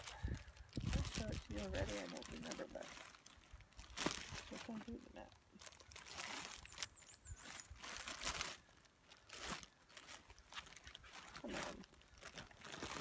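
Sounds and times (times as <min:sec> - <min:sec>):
bag and paper rustling: 0:00.0 - 0:13.0.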